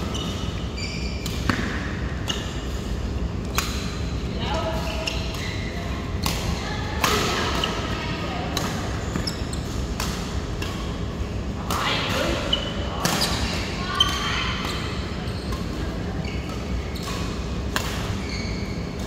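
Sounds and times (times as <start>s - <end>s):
rackets hitting shuttlecock: 1.2s - 4.1s, 4.7s - 11.0s, 14.5s - 19.0s.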